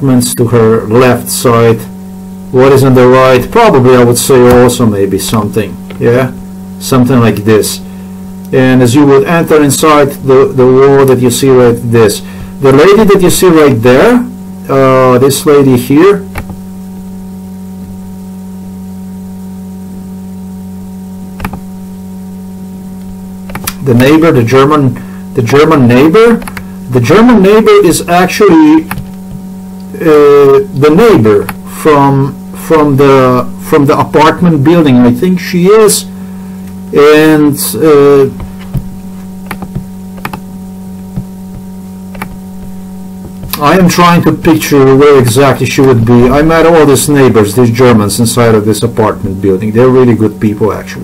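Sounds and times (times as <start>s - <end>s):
buzz of constant tones: 0.0s - 51.0s
electrical hum: 0.0s - 51.0s
mouse click: 23.5s - 23.8s.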